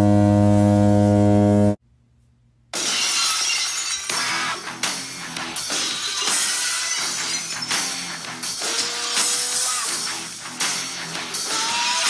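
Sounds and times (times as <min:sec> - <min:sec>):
glass shattering: 0:02.8 - 0:05.0, 0:05.6 - 0:08.2
loud rock music: 0:04.1 - 0:12.0.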